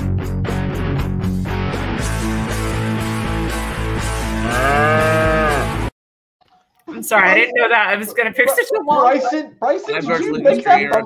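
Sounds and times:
guitar-driven music: 0:00.0 - 0:05.9
cow mooing: 0:04.4 - 0:05.8.

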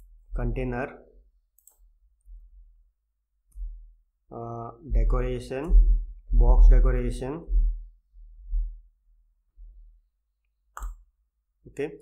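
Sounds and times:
keyboard clicks: 0:01.6 - 0:01.8.

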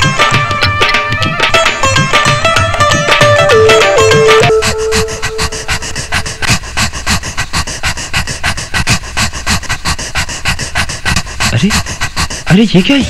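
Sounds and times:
breathy panting pulses: 0:00.0 - 0:13.0
held musical note: 0:02.5 - 0:06.4.

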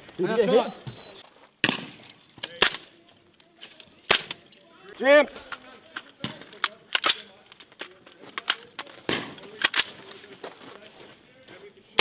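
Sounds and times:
gunshots: 0:09.0 - 0:10.0.

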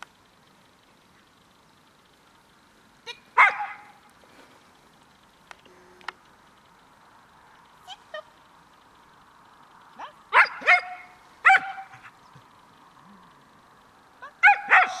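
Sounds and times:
dog yelping barks: 0:03.1 - 0:04.0, 0:10.0 - 0:12.2, 0:14.2 - 0:15.0.

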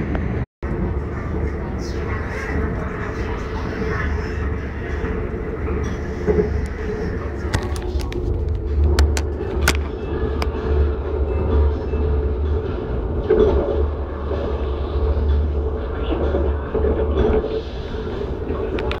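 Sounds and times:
train rumble inside carriage: 0:00.0 - 0:19.0.

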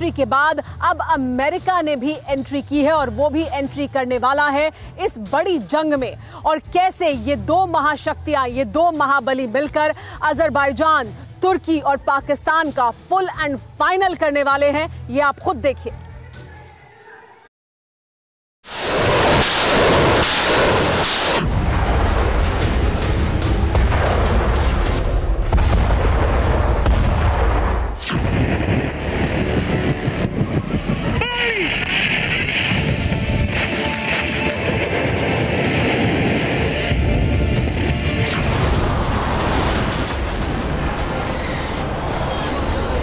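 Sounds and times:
explosion booms: 0:18.8 - 0:31.1, 0:35.6 - 0:41.4
dramatic music: 0:20.8 - 0:43.0
continuous rumbling: 0:27.9 - 0:43.0.

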